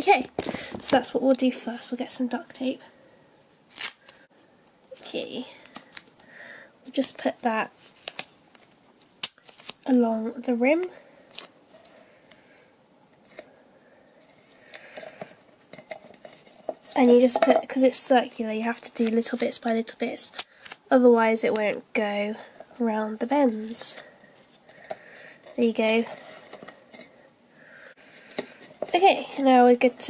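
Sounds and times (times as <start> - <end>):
tape rustling: 3.7 - 6.3, 6.9 - 12.4, 23.2 - 27.1.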